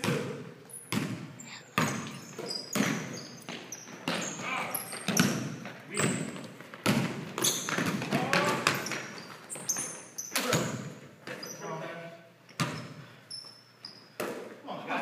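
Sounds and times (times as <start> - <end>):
basketball bouncing on hardwood floor: 0.0 - 9.9, 12.6 - 12.9.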